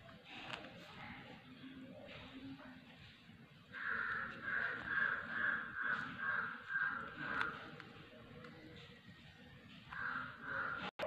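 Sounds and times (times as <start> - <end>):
bird calling rapidly: 3.8 - 7.7.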